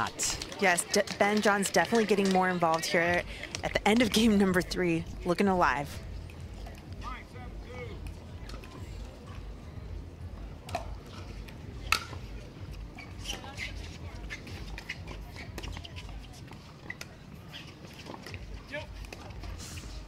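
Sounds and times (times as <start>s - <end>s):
low crowd murmur: 0.0s - 20.0s.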